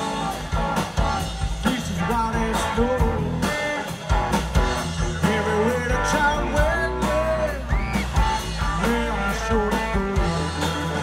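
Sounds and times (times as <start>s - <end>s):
bass: 0.0s - 11.0s
drums: 0.0s - 11.0s
electric guitars: 0.0s - 11.0s
person singing: 5.0s - 11.0s.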